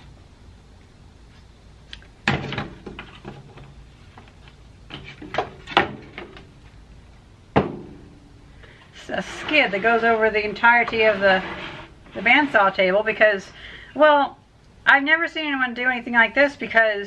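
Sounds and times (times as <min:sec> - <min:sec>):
wooden boards knocking and thumping: 0:02.2 - 0:03.7, 0:04.9 - 0:06.5, 0:07.5 - 0:08.1.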